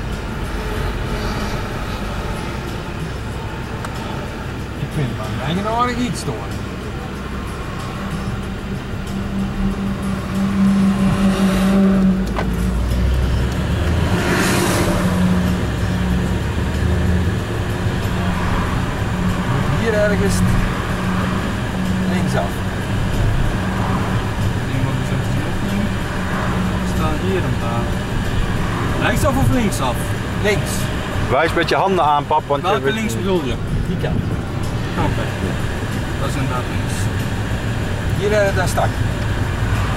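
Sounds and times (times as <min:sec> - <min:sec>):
car engine and road noise: 0:00.0 - 0:39.9.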